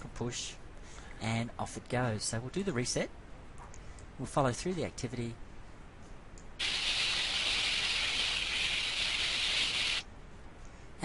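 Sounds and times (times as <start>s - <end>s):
sleigh sliding hiss: 6.6s - 10.0s.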